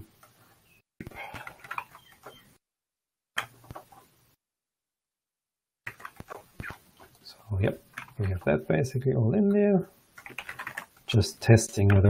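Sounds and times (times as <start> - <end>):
computer keyboard typing: 5.9 - 6.8, 7.8 - 8.6, 10.1 - 11.0.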